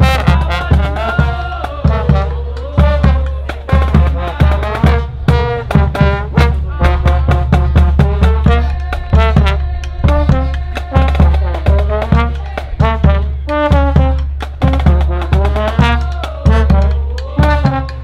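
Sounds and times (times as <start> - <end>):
bass drum beat: 0.0 - 18.0
brass band playing: 0.0 - 18.0.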